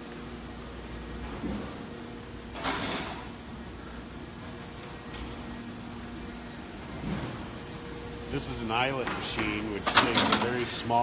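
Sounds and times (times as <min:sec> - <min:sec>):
factory floor hum: 0:00.0 - 0:11.0.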